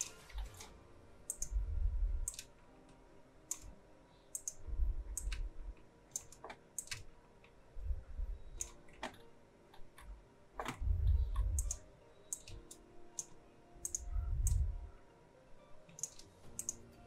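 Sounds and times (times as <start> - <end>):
computer mouse clicking: 1.3 - 1.6, 2.2 - 2.5, 3.5 - 5.5, 6.1 - 7.6, 8.6 - 14.7, 15.9 - 16.8
soft low rumbles: 1.4 - 2.3, 4.6 - 5.8, 7.7 - 8.6, 10.0 - 11.8, 13.9 - 15.0.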